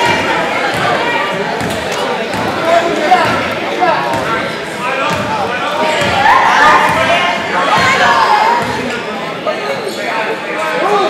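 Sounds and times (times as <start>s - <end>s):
echoing chatter of people: 0.0s - 11.0s.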